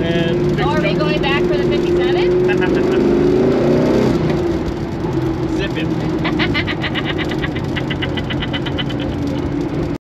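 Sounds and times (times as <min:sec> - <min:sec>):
car engine drone from inside: 0:00.0 - 0:10.0
woman laughing: 0:02.4 - 0:03.0, 0:06.2 - 0:09.5.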